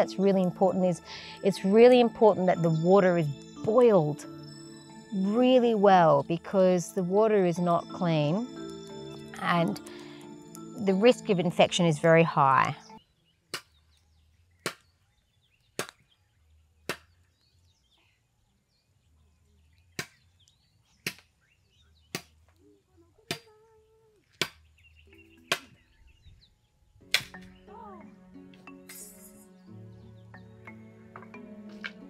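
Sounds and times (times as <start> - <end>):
music: 0.0 - 13.0, 26.9 - 32.0
machete chopping wooden pole: 14.6 - 14.9, 15.8 - 16.0, 16.8 - 17.2, 20.0 - 20.2, 21.0 - 21.3, 22.1 - 22.4, 24.3 - 24.6, 27.1 - 27.4.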